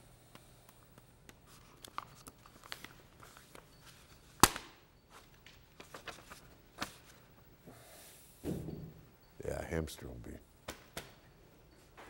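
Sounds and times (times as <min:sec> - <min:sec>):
paper rustling: 0:01.5 - 0:04.5, 0:05.1 - 0:07.2.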